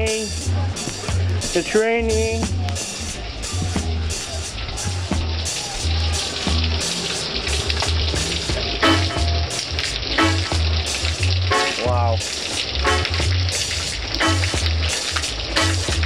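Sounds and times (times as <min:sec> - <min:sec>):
heavy rain pouring: 0:00.0 - 0:16.0
music with repeating bass line: 0:00.0 - 0:16.0
water streaming off roof: 0:00.0 - 0:16.0.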